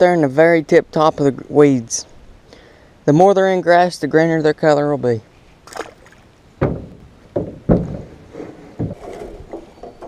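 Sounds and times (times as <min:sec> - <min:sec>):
paddle knocking on metal hull: 0:06.6 - 0:10.0.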